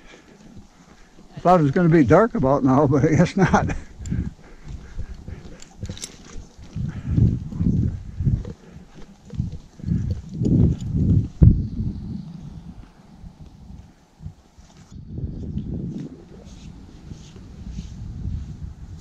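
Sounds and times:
horse hooves in deep snow: 0.0s - 11.6s, 12.2s - 19.0s.

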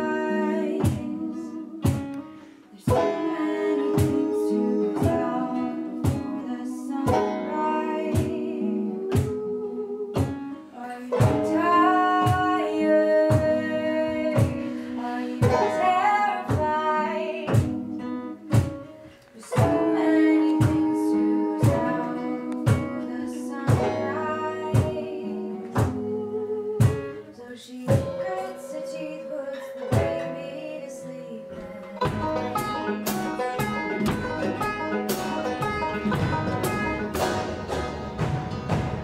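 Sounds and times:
person singing: 0.0s - 37.6s
acoustic folk band playing: 0.0s - 39.0s
upright bass plucked notes: 31.5s - 39.0s.

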